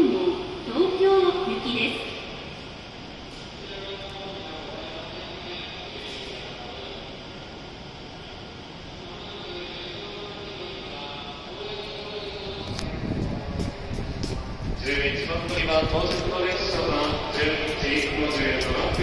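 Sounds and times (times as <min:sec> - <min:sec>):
steady background hum: 0:00.0 - 0:19.0.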